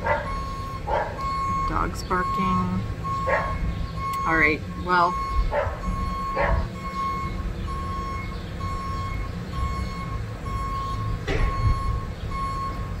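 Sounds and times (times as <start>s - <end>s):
dog barking: 0.0s - 0.3s, 0.9s - 1.2s, 3.2s - 3.6s, 5.5s - 6.7s
low engine rumble: 0.0s - 13.0s
reversing alarm beeping: 0.0s - 13.0s.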